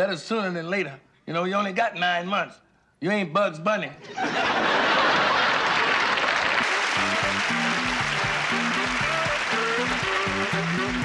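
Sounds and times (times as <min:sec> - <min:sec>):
audience laughing and applauding: 0:04.1 - 0:11.0
instrumental music with bass line: 0:06.7 - 0:11.0.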